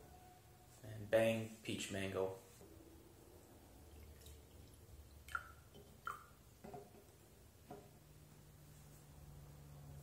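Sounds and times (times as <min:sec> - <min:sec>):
liquid dripping and splashing: 0:03.8 - 0:07.0.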